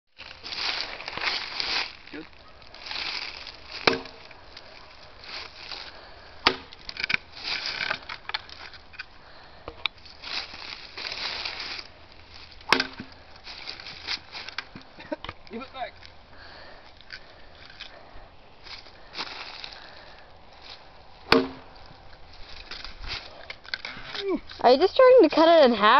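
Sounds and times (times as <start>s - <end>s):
rustling dry leaves underfoot: 0.1s - 25.9s
sword hacking wooden post: 3.8s - 4.2s, 6.4s - 7.2s, 12.7s - 13.1s, 21.3s - 21.7s.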